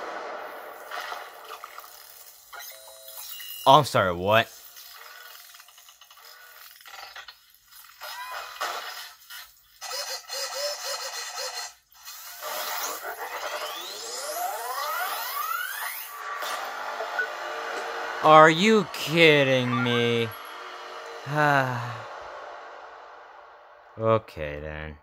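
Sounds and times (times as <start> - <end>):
cartoon fight music and effects: 9.8 - 17.3, 18.3 - 20.4
rising sweeps: 13.6 - 24.0.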